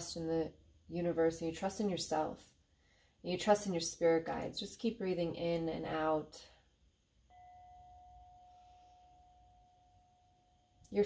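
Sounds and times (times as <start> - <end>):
metal singing bowl ringing: 7.3 - 10.8.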